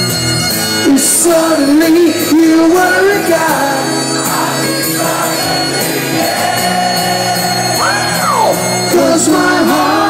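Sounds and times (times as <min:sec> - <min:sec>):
bagpipe drones: 0:00.0 - 0:10.0
live rock music: 0:00.0 - 0:10.0
vocal wail: 0:07.8 - 0:09.1.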